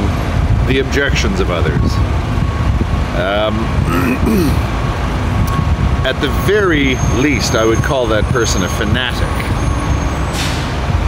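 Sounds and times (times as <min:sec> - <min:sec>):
man's wordless vocal sounds: 0:03.5 - 0:04.7.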